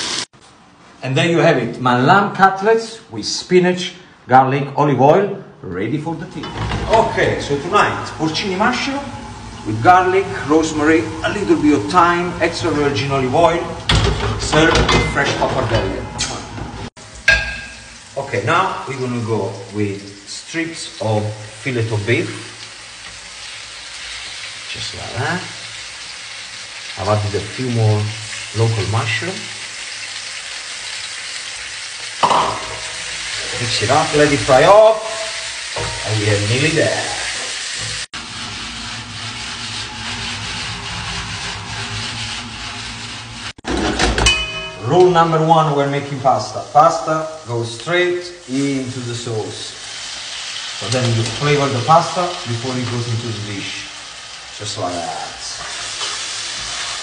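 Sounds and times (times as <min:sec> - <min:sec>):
pot of water boiling: 0:16.8 - 0:43.7, 0:46.2 - 0:57.0
metal clink of cookware: 0:17.3 - 0:17.9, 0:32.2 - 0:32.9, 0:44.0 - 0:45.2.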